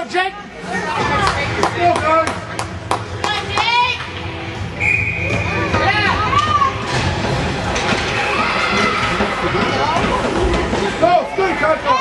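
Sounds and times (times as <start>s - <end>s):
high whistle-like tone: 4.8s - 5.6s.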